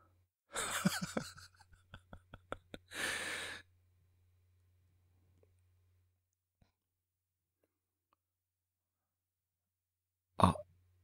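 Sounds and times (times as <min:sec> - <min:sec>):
breathy sigh: 0:02.9 - 0:03.7.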